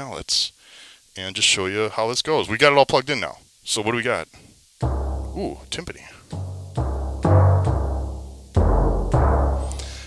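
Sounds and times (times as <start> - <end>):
timpani notes ringing: 4.8 - 10.0.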